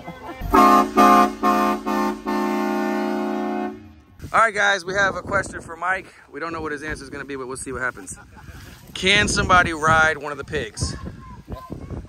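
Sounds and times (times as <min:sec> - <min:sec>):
pickup truck horn honking: 0:00.4 - 0:04.2.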